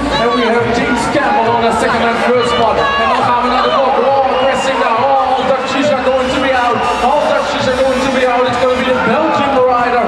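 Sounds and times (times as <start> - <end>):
man announcing over public address: 0.0 - 10.0.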